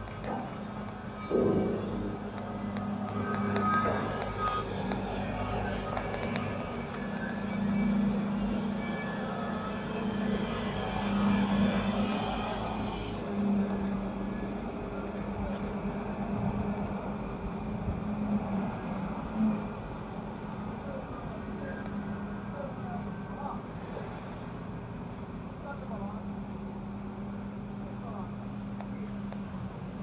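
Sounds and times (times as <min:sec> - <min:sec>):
low engine hum: 0:00.0 - 0:30.0.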